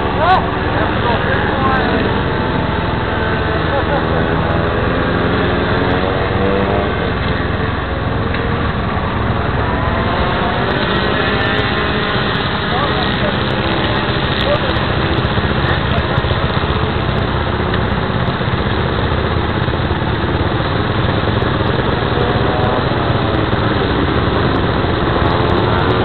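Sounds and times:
people talking: 0.0 - 4.7, 9.6 - 16.9
motorcycle engine running: 0.0 - 26.0.

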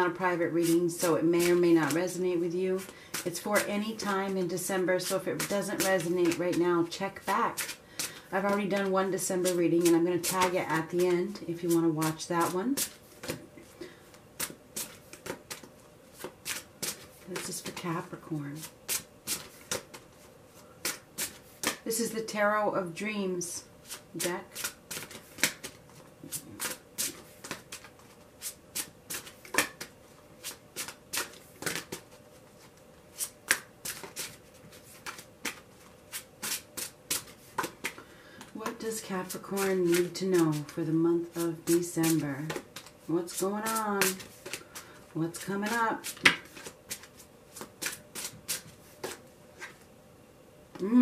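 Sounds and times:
cards being shuffled: 5.0 - 13.4, 14.4 - 21.9, 23.8 - 49.8.

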